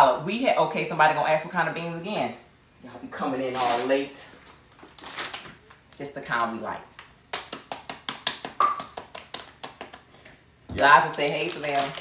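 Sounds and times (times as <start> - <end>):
beans rattling in plastic bag: 11.0 - 12.0.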